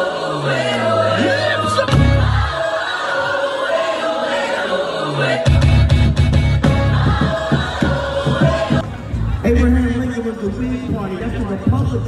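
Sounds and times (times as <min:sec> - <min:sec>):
gospel choir singing held chords: 0:00.0 - 0:09.5.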